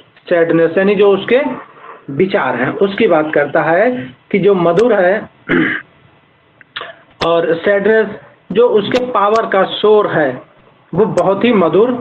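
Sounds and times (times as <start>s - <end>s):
person clearing throat: 5.4s - 5.9s, 6.7s - 7.1s.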